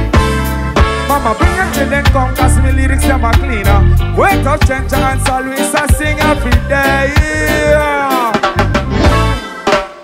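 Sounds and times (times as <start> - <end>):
live reggae band: 0.0 - 10.0.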